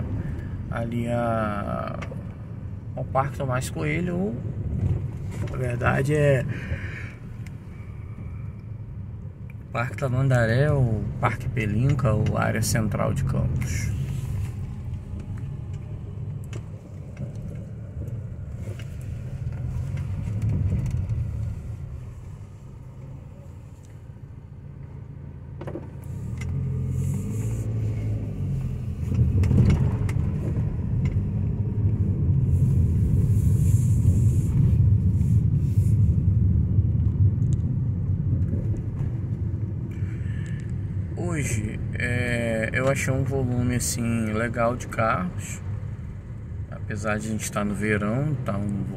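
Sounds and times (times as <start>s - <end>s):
car engine and road rumble: 0.0s - 48.9s.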